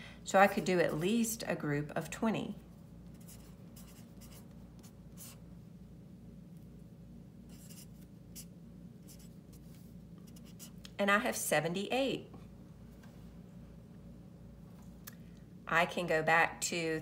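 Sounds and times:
faint low hum: 0:00.0 - 0:17.0
felt-tip marker scratching on paper: 0:03.1 - 0:05.4.

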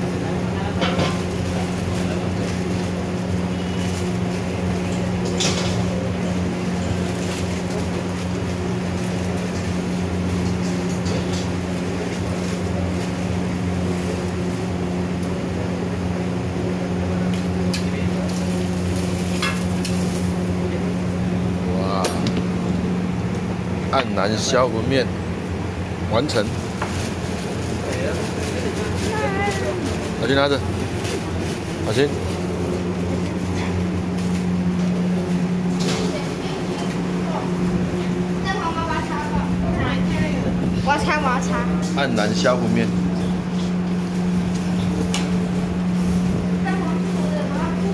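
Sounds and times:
low machine hum: 0:00.0 - 0:47.9.

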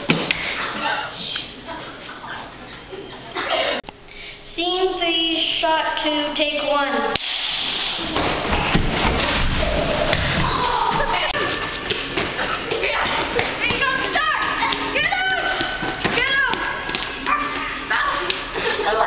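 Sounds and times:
thumps of feet and bodies: 0:08.1 - 0:18.5
children shouting: 0:10.2 - 0:11.6, 0:12.4 - 0:19.0.

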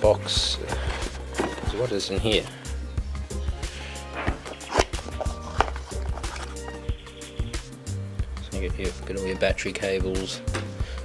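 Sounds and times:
cables being handled: 0:00.0 - 0:02.6, 0:04.1 - 0:06.8
background music with low tones: 0:00.0 - 0:11.0
cardboard box being opened: 0:00.6 - 0:02.1, 0:04.2 - 0:06.8.

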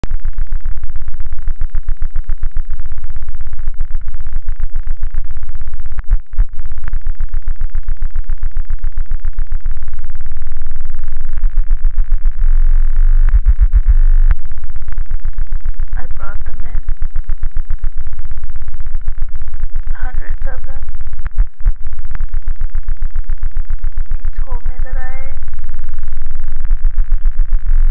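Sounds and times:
harsh electronic noise music: 0:00.0 - 0:27.9
processed voice fragment: 0:15.9 - 0:16.9, 0:19.8 - 0:21.2, 0:24.1 - 0:25.5.

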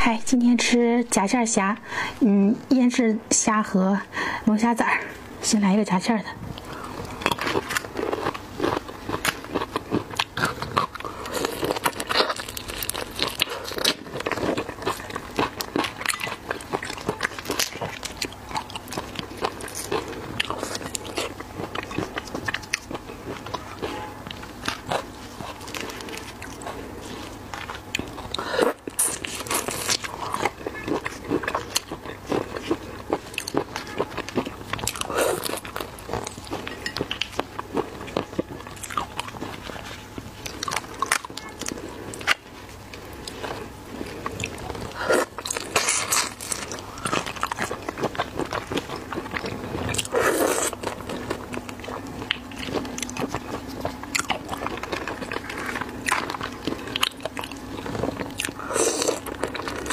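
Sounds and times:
chewing and crunching shrimp: 0:06.4 - 0:59.9.

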